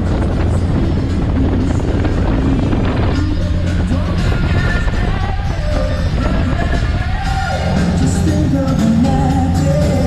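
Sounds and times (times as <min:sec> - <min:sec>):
background music: 0:00.0 - 0:10.0
motorboat engine drone: 0:00.0 - 0:10.0
rushing wind and water: 0:00.0 - 0:10.0.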